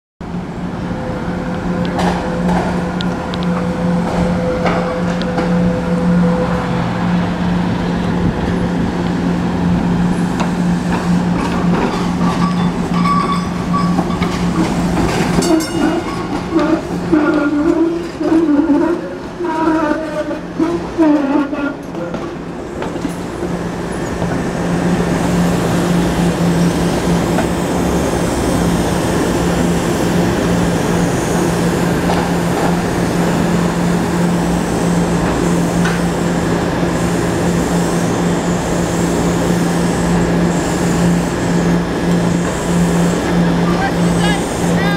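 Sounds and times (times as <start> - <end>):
trolley humming: 0.2 - 44.9
trolley rumbling: 0.2 - 44.9.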